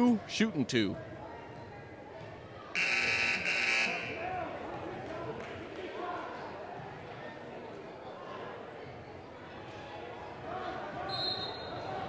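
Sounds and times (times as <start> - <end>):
murmur of voices: 0.0 - 12.0
scoreboard buzzer: 2.8 - 4.2.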